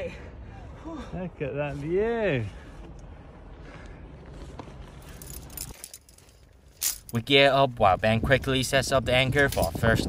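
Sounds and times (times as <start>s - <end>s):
climbing hardware jangling: 5.0s - 7.3s, 9.4s - 9.9s.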